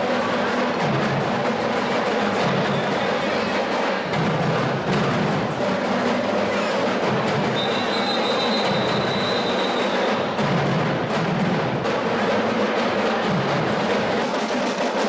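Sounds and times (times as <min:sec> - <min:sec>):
carnival parade drumming: 0:00.0 - 0:15.0.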